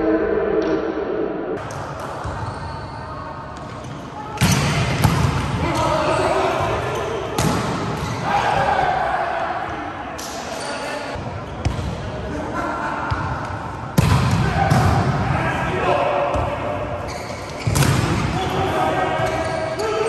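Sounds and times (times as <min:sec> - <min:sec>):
players' voices: 0:01.6 - 0:20.0.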